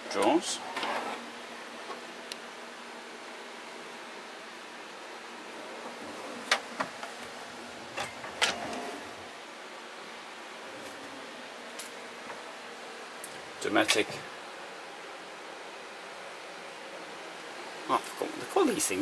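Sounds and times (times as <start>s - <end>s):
steady background hiss: 0.0s - 19.0s
kitchen drawers opening and shutting: 0.6s - 1.2s, 5.8s - 9.3s.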